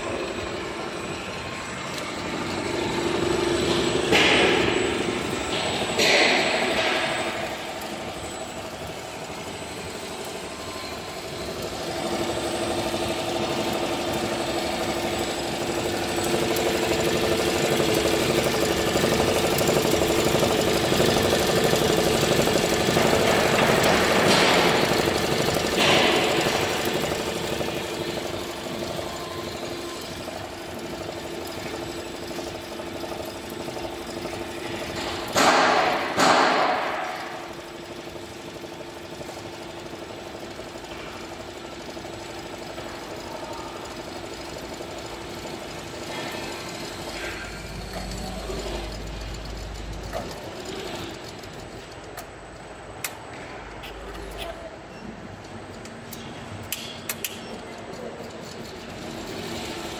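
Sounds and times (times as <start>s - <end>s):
embroidery machine stitching: 1.8s - 52.2s, 57.6s - 59.9s.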